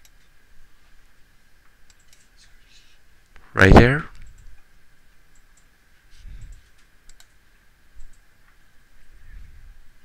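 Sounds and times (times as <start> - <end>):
steady background hiss: 0.0 - 10.0
computer mouse clicks: 1.8 - 2.3, 5.3 - 5.7, 6.4 - 7.4, 8.0 - 8.2.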